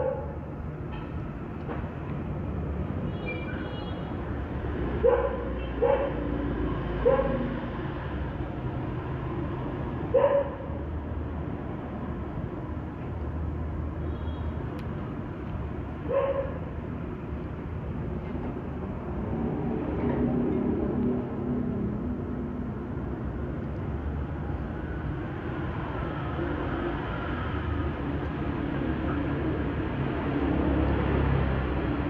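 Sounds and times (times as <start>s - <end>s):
dog barking: 0.0s - 0.4s, 5.0s - 6.3s, 7.0s - 7.5s, 10.1s - 10.8s, 16.1s - 16.6s.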